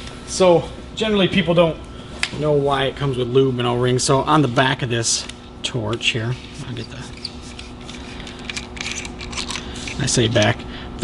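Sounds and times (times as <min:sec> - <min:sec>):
steady low hum: 0:00.0 - 0:11.0
small clicks and scrapes: 0:06.6 - 0:10.6.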